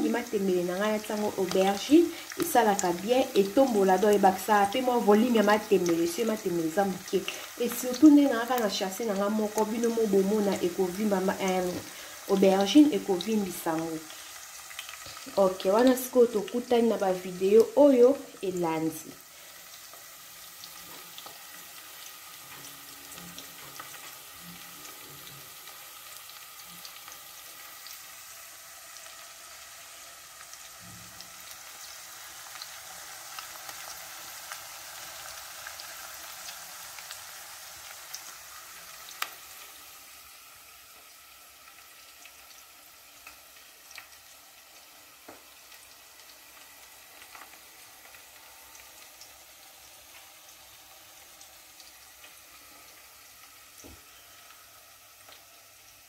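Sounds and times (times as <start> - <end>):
food sizzling with crackles: 0.0 - 56.0.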